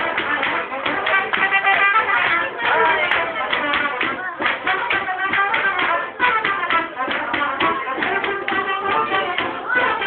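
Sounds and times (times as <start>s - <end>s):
folk music melody: 0.0s - 10.0s
steady tapping beat: 0.0s - 10.0s.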